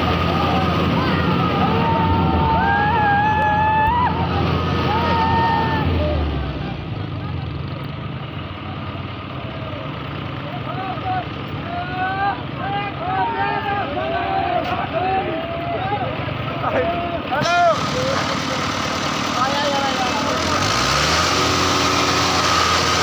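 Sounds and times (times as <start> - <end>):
men shouting and cheering: 0.0 - 7.5, 9.5 - 21.2
diesel tractor engines running: 0.0 - 23.0.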